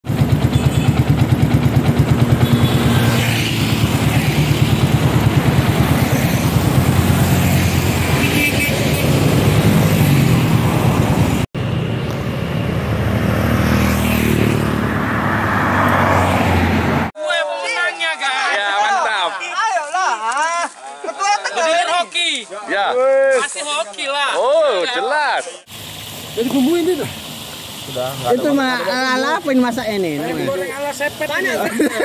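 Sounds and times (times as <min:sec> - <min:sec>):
motorcycles passing: 0:00.0 - 0:17.1, 0:25.6 - 0:32.0
road noise: 0:00.0 - 0:17.2, 0:23.6 - 0:32.0
car passing: 0:01.2 - 0:17.1.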